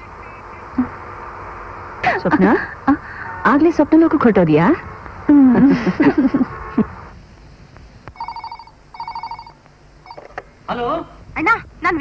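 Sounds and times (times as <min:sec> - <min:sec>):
telephone ringing: 0:08.2 - 0:10.4.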